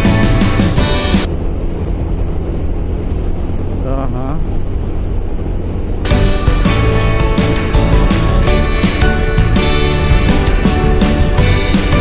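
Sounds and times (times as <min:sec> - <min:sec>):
background music: 0:00.0 - 0:01.3, 0:06.1 - 0:12.0
scooter engine and wind rumble: 0:00.0 - 0:12.0.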